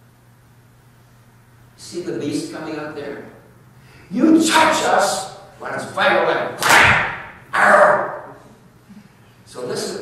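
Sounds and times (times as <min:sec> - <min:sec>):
man speaking: 0:04.1 - 0:06.6, 0:07.5 - 0:08.4.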